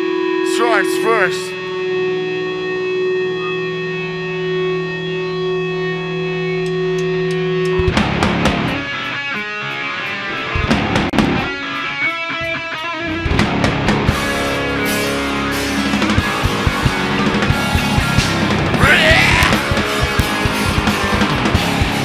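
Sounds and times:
heavy metal band playing: 0:00.4 - 0:22.0
distorted electric guitar note: 0:12.4 - 0:22.0.

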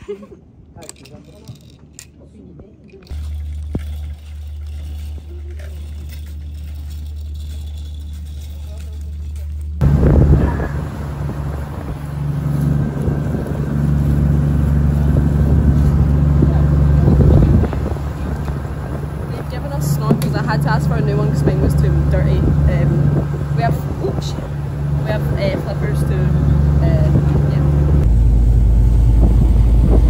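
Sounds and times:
water noise: 0:03.0 - 0:30.0
motorboat engine droning: 0:03.1 - 0:30.0
rushing wind: 0:09.8 - 0:30.0.

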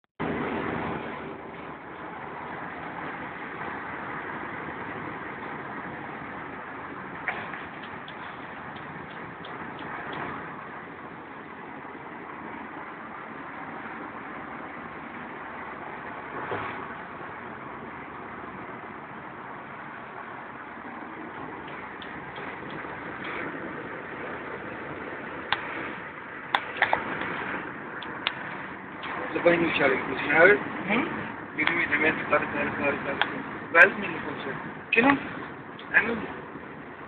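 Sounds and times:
road and engine noise in car: 0:00.2 - 0:37.0.

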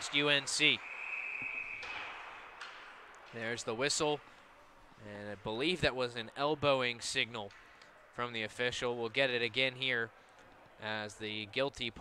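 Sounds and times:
referee's whistle: 0:00.6 - 0:02.2.

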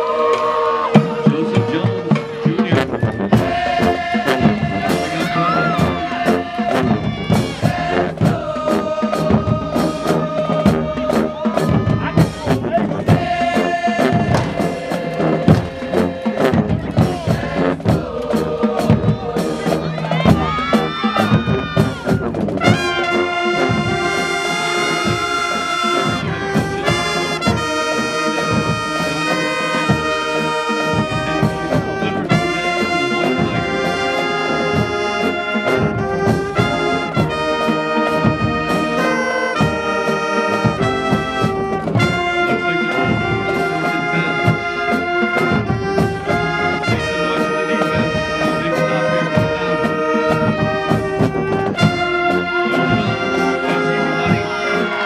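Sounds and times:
marching band playing: 0:00.0 - 0:55.0.

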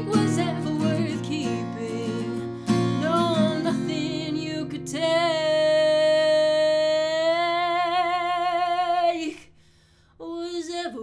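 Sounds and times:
acoustic guitar chord ringing: 0:00.0 - 0:05.4.

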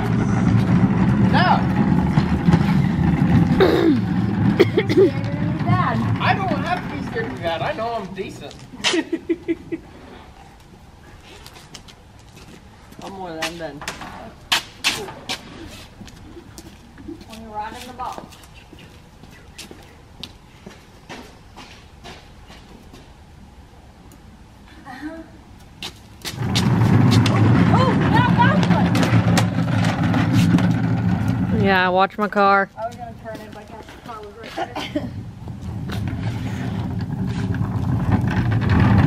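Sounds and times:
vehicle engine running: 0:00.0 - 0:08.0, 0:26.4 - 0:32.1.

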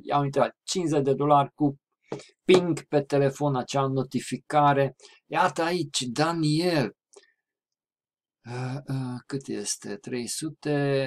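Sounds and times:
man talking: 0:00.0 - 0:01.8, 0:02.4 - 0:07.0, 0:08.5 - 0:11.0.

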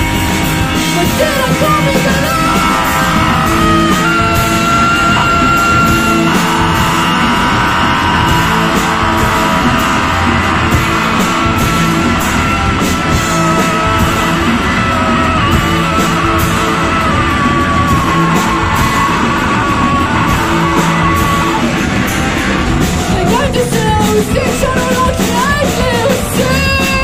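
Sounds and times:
drum kit: 0:00.0 - 0:27.0
electric guitar: 0:00.0 - 0:27.0.

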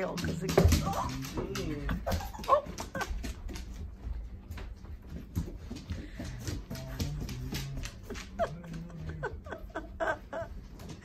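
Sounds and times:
dog claws scrabbling on tile: 0:00.0 - 0:08.8
woman laughing: 0:01.6 - 0:03.5, 0:06.9 - 0:11.0.

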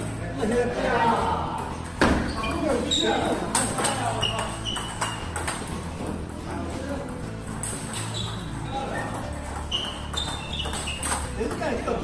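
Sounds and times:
background music: 0:00.0 - 0:12.0
ball bouncing on table: 0:03.5 - 0:06.4, 0:07.0 - 0:11.7
table tennis ball clicking off paddles: 0:03.5 - 0:06.4, 0:07.1 - 0:11.8.

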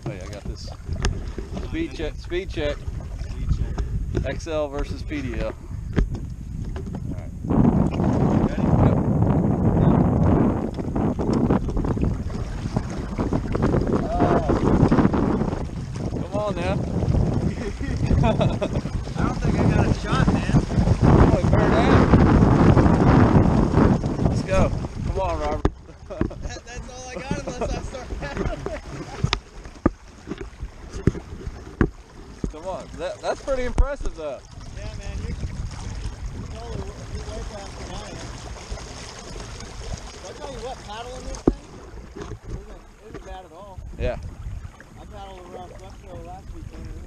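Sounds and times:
water rushing along kayak hull: 0:00.0 - 0:47.0
wind buffeting microphone: 0:00.0 - 0:47.0.

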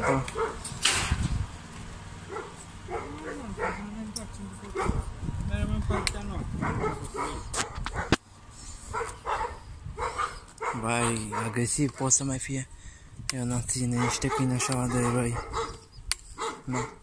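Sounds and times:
dog barking aggressively: 0:00.0 - 0:00.6, 0:02.3 - 0:03.9, 0:04.7 - 0:05.1, 0:05.9 - 0:08.2, 0:08.9 - 0:12.2, 0:13.9 - 0:17.0.

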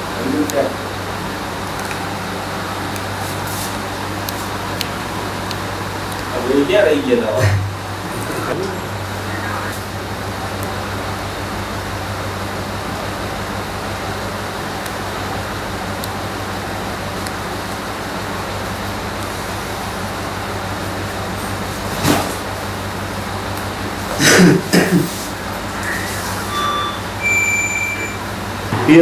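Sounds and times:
low hum and hiss: 0:00.0 - 0:29.0.

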